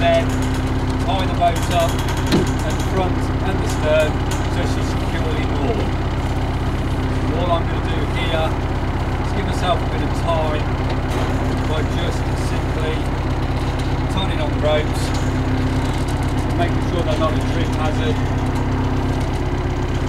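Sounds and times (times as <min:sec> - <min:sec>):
diesel engine idling: 0:00.0 - 0:20.0.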